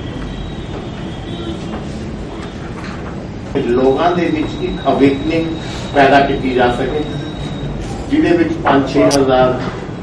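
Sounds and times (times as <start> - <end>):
room noise rumble and hiss: 0.0 - 10.0.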